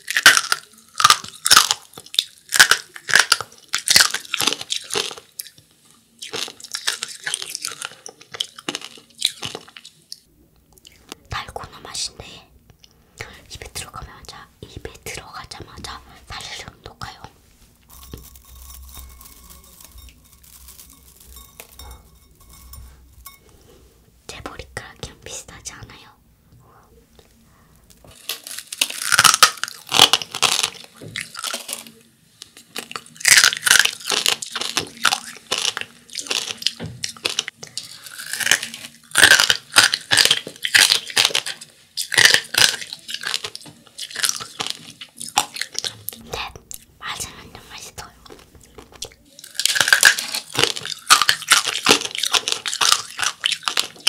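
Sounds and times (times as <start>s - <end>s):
crunchy candy being chewed: 0.0s - 12.4s, 13.2s - 22.8s, 27.9s - 54.0s.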